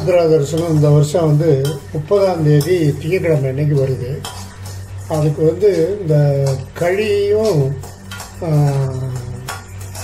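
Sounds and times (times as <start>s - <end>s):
metal spatula scraping a pan: 0.0s - 10.0s
spatula clinking against pan: 0.0s - 10.0s.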